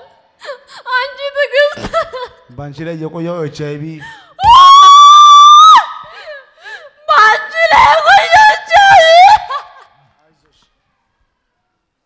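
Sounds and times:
woman screaming into microphone: 4.4s - 6.1s, 7.1s - 9.8s.

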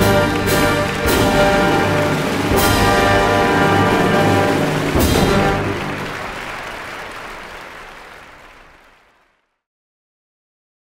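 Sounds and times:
audience applause: 0.0s - 9.6s.

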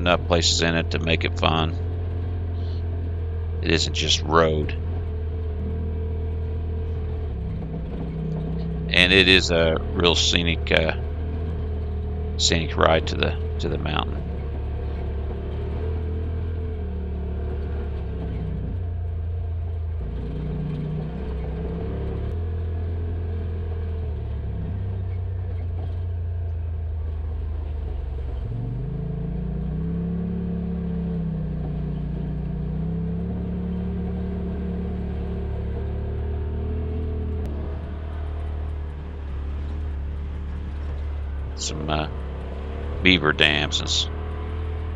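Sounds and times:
off-road vehicle engine running: 0.0s - 44.9s.

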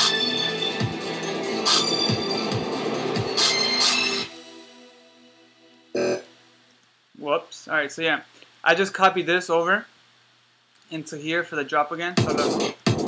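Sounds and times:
dubstep music with deep kicks: 0.0s - 4.3s, 12.2s - 13.0s
short electronic hit: 6.0s - 6.2s.

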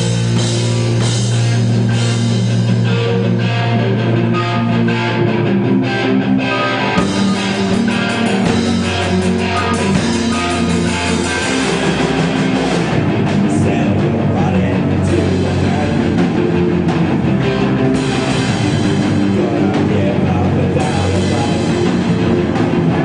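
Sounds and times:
drum kit: 0.0s - 5.6s, 6.6s - 23.0s
bass guitar: 0.0s - 23.0s
electric guitars: 0.0s - 23.0s.

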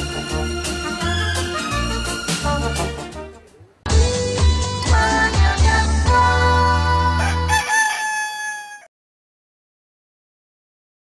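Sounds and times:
music jingle: 0.0s - 7.3s
rooster crowing: 7.2s - 8.9s.

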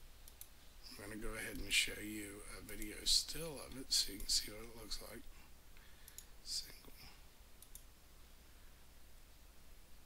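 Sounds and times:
computer mouse clicks: 0.2s - 0.5s, 6.0s - 6.3s, 7.6s - 7.9s.

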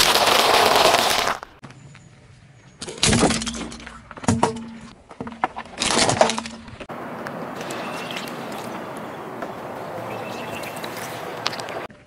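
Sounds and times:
object crunching under tyre: 0.0s - 1.6s, 5.1s - 9.6s.

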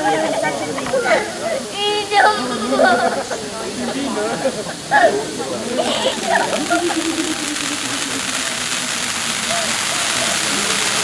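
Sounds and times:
people talking: 0.0s - 11.0s
flares hissing: 3.3s - 11.0s.

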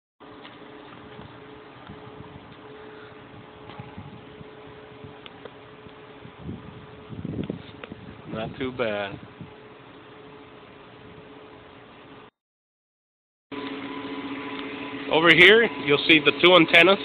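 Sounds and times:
mechanical hum: 0.2s - 12.3s, 13.5s - 17.0s.

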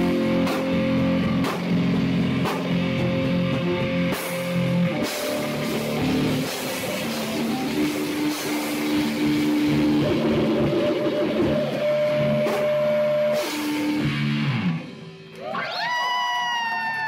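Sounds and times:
rock band playing: 0.0s - 17.0s
long high cry: 15.4s - 17.0s.

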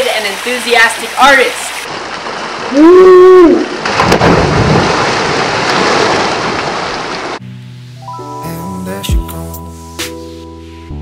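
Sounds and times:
rushing splashing water: 0.0s - 7.4s
person splashing into pool: 2.5s - 7.4s
quiet music: 7.4s - 11.0s.

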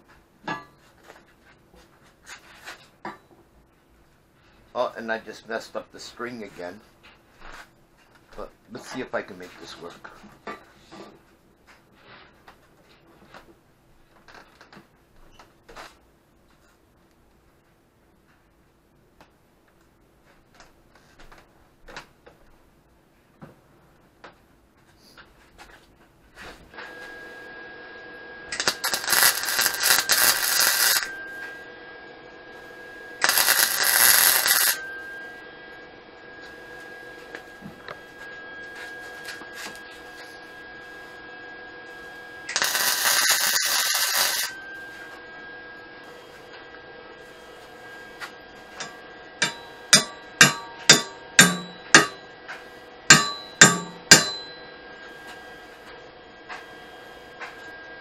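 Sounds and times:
electrical hum and whine: 0.0s - 58.0s
welding arc crackle: 28.5s - 31.2s, 33.2s - 34.9s, 42.5s - 44.6s, 48.8s - 52.2s.

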